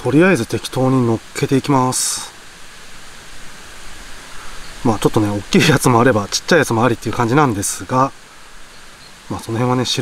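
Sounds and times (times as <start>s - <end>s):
outdoor ambient hiss: 0.0s - 10.0s
man's voice: 4.8s - 8.1s, 9.3s - 10.0s.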